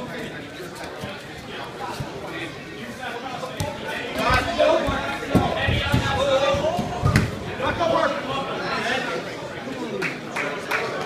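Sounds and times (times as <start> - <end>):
crowd chatter in a large hall: 0.0 - 11.0.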